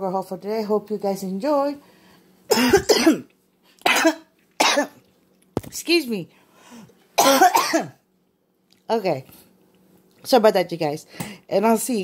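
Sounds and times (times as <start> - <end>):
person coughing: 2.5 - 5.0, 7.2 - 8.0.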